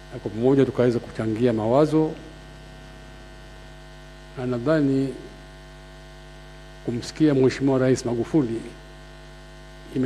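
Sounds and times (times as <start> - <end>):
steady electrical hum: 0.0 - 10.0
man speaking: 0.2 - 2.3, 4.4 - 5.4.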